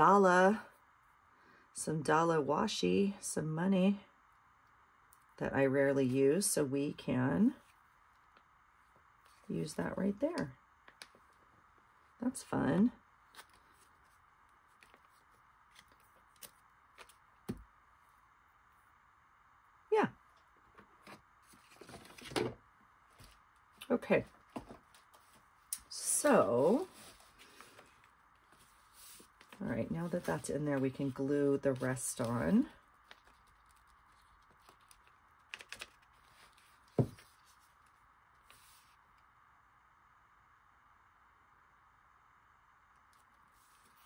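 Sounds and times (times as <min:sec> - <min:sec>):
paper and tape rustling: 0:26.6 - 0:39.0.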